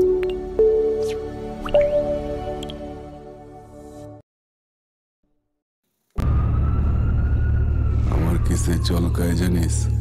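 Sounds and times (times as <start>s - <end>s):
plucked synth jingle notes: 0.0s - 2.9s.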